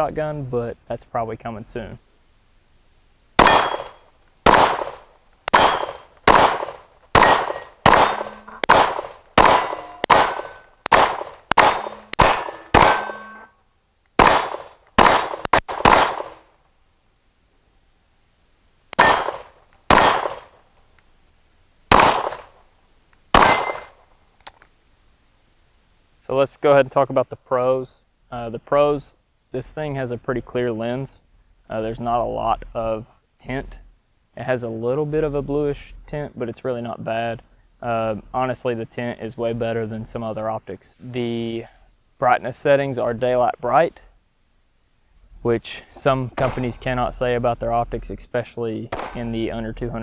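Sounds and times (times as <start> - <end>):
steel targets ringing: 3.4 - 4.0, 5.5 - 6.1, 7.2 - 10.8, 11.5 - 13.6, 23.4 - 23.9
handgun shots outdoors: 3.4 - 13.5, 14.2 - 16.5, 19.0 - 20.6, 21.9 - 22.6, 23.3 - 24.0, 46.4 - 46.7, 48.9 - 49.3.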